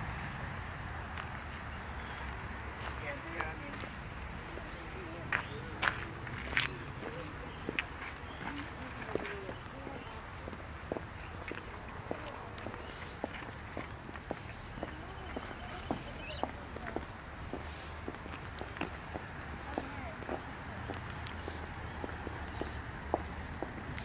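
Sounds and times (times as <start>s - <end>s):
footsteps on asphalt: 1.0s - 24.0s.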